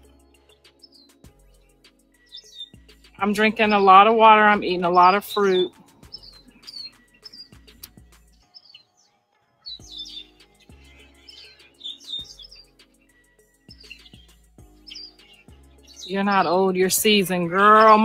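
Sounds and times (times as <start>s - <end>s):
birds chirping: 0.0s - 18.0s
faint background music: 0.0s - 18.0s.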